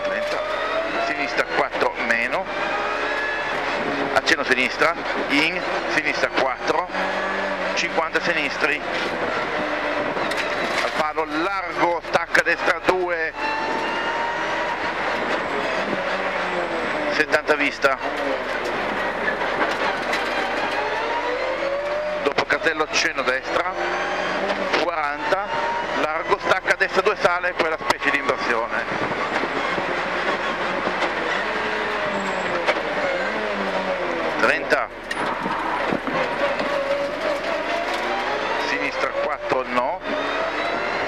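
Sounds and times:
car engine accelerating: 0.0 - 41.0.

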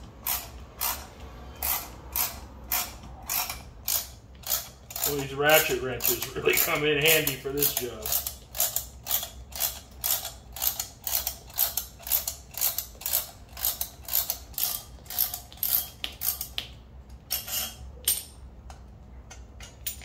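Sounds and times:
ratcheting wrench clicking: 0.2 - 16.6.

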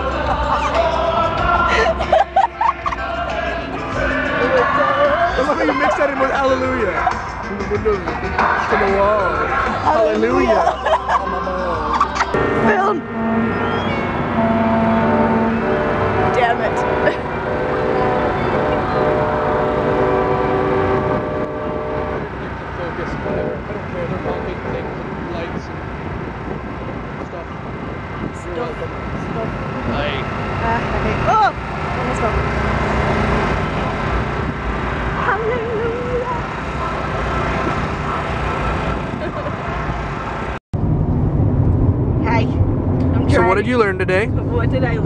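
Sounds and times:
distant choir singing chords: 0.0 - 6.2, 10.7 - 22.8
road noise inside moving car: 0.0 - 7.4, 8.4 - 45.0
boat noise: 0.0 - 40.6, 41.7 - 45.0
low rumble: 0.0 - 45.0.

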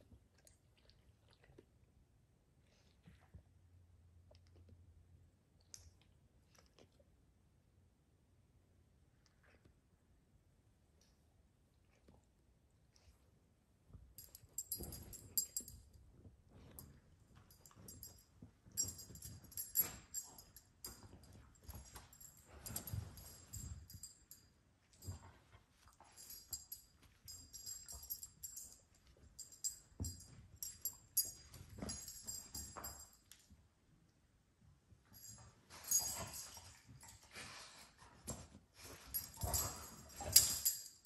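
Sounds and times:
collar tags jingling: 14.2 - 33.4, 35.1 - 41.0.

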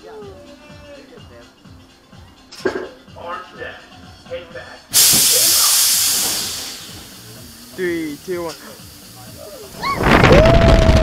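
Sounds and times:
loud compressed air hiss: 4.9 - 9.9.

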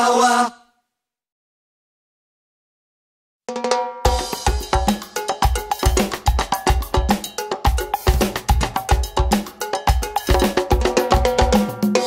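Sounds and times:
cowbell pattern: 3.6 - 12.0
latin dance music: 4.1 - 12.0.

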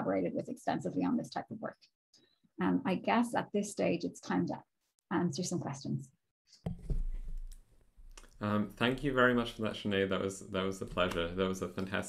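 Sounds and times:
faint room noise: 6.7 - 12.0.

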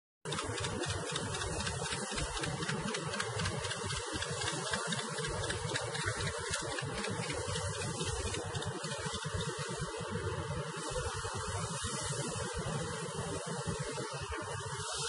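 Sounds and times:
rushing noise over water: 0.5 - 15.0.

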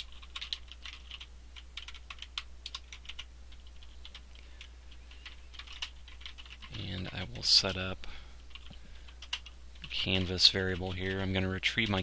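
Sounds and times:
typing on computer keyboard: 0.0 - 7.8, 8.5 - 11.2.

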